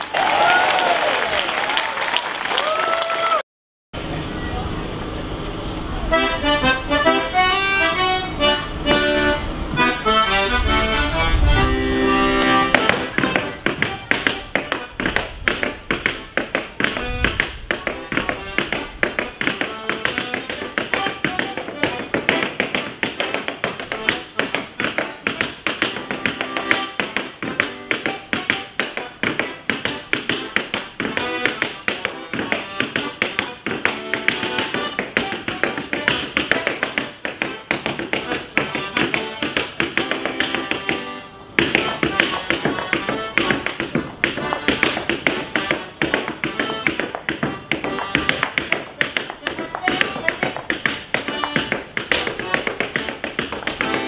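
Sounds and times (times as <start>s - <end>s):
accordion music: 4.0s - 54.0s.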